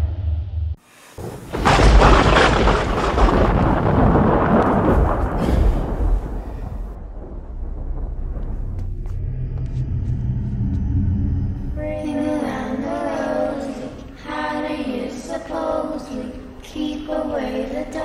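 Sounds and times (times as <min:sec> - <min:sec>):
loud rumbling boom: 0:01.3 - 0:12.0
low steady drone: 0:06.9 - 0:14.6.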